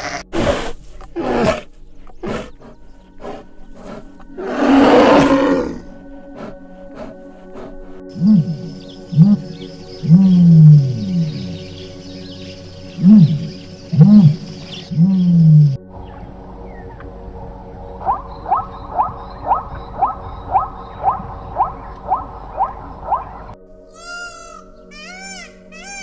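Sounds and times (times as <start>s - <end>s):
zebra barking: 0.0s - 9.5s, 13.0s - 26.0s
ostrich low calls: 13.0s - 23.6s
peafowl calls: 13.0s - 26.0s.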